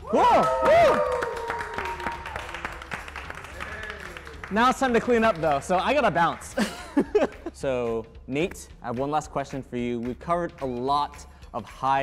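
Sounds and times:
people cheering woo: 0.0s - 4.4s
people clapping: 0.0s - 7.5s.

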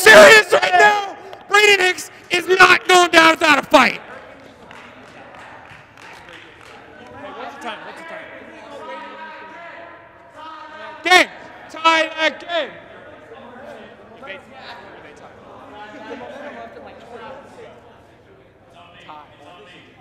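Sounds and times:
man shouting: 0.0s - 4.0s, 10.6s - 12.8s.

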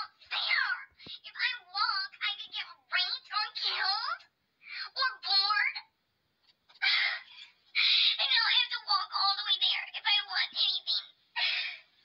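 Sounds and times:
person talking: 0.0s - 5.9s, 6.8s - 11.8s
girl's breathy wordless sound: 6.8s - 8.3s.

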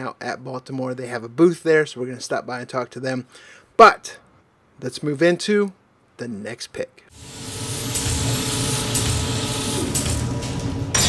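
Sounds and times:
dense steady hiss: 0.0s - 7.2s.

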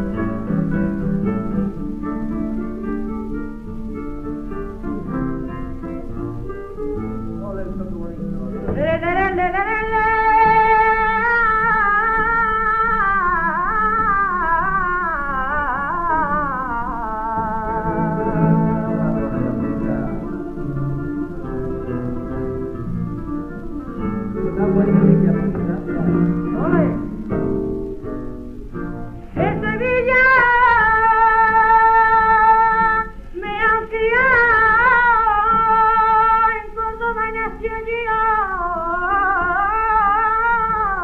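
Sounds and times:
flamenco guitar plucking: 0.0s - 41.0s
person singing: 6.5s - 23.0s, 24.0s - 27.2s, 29.2s - 41.0s.

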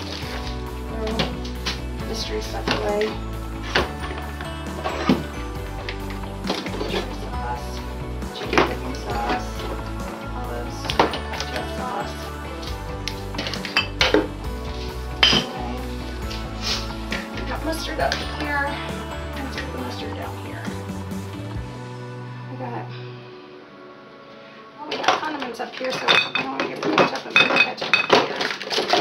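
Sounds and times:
bottles and jars clinking: 0.0s - 20.3s, 25.8s - 29.0s
background music: 0.0s - 29.0s.

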